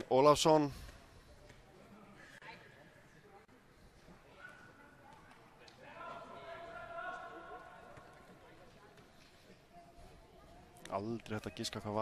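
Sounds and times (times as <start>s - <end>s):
faint stadium crowd: 0.0s - 12.0s.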